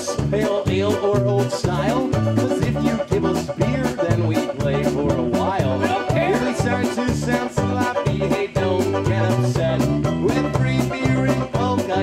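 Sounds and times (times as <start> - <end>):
polka band playing: 0.0 - 12.0.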